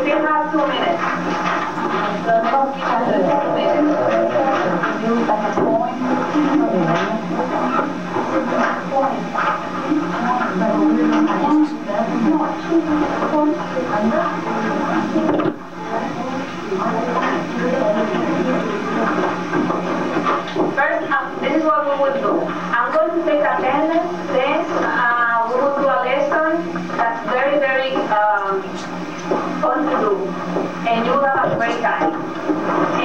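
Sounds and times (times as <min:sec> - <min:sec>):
steady low hum: 0:00.0 - 0:33.0
people chattering: 0:02.0 - 0:19.5.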